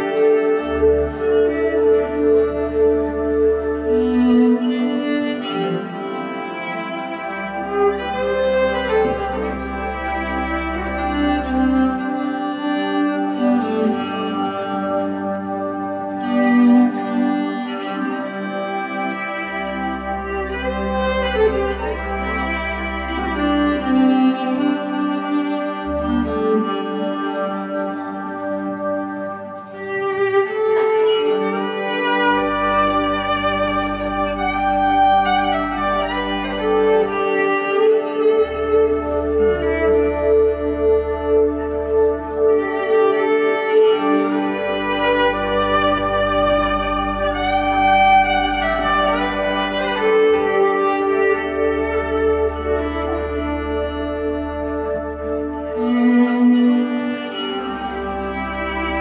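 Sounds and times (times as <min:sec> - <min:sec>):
electric violin folk melody: 0:00.0 - 0:59.0
electric bass held low notes: 0:43.8 - 0:59.0.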